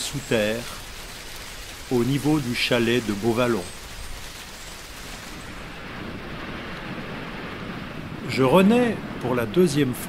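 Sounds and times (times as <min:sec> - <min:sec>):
waterfall rushing: 0:00.0 - 0:06.1.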